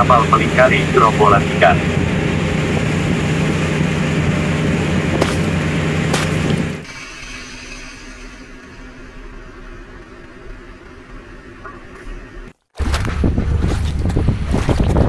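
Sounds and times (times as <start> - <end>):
water rushing along hull: 0.0 - 7.2
boat engine running: 0.0 - 15.0
low hum: 0.0 - 15.0
sea wash: 0.4 - 8.6
sharp knocks: 5.2 - 6.8.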